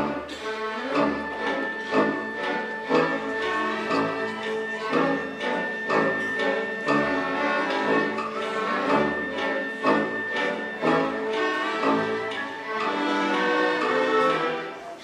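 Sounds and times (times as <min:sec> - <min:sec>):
orchestra strings and brass: 0:00.0 - 0:15.0.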